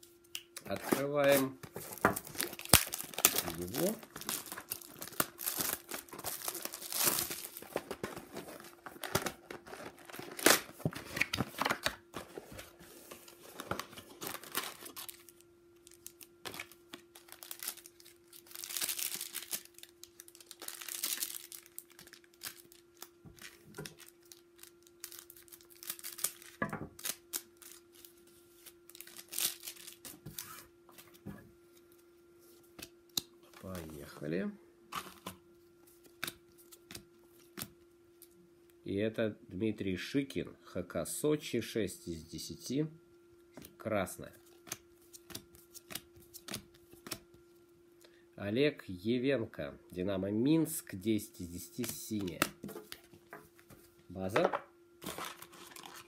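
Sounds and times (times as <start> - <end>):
faint steady hum: 0.0 - 56.0
cellophane crinkling and tearing: 0.7 - 31.2, 55.0 - 56.0
wrappers being torn open: 2.2 - 11.9, 14.2 - 30.6, 55.0 - 56.0.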